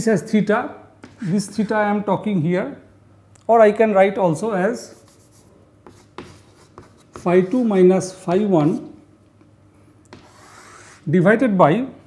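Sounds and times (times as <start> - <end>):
chalk tapping on chalkboard: 4.9 - 8.9, 10.1 - 11.0.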